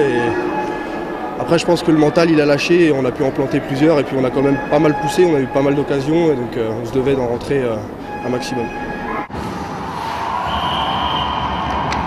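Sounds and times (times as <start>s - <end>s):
crowd and game noise: 0.0s - 12.0s.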